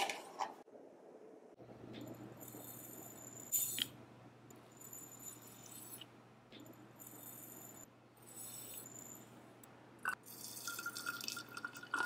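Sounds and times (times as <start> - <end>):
water trickling into glass bottle: 10.1 - 12.0.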